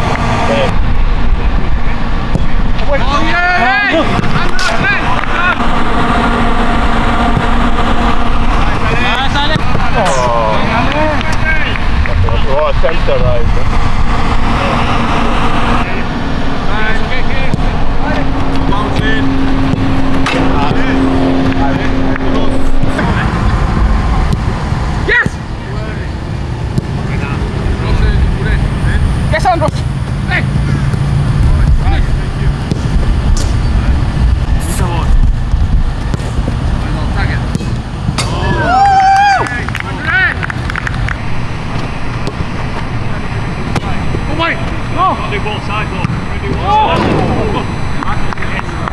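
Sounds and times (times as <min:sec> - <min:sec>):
steady low rumble: 0:00.0 - 0:48.9
players shouting: 0:02.8 - 0:11.9, 0:38.1 - 0:48.3
ball being kicked: 0:41.8 - 0:42.5.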